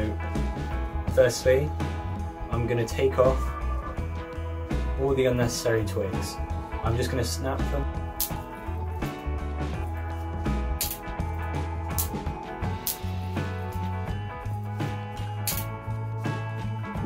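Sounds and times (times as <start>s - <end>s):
background music with guitar and bass: 0.0s - 17.0s
twigs snapping: 10.8s - 11.1s, 11.9s - 12.2s, 12.8s - 13.1s, 15.4s - 15.7s.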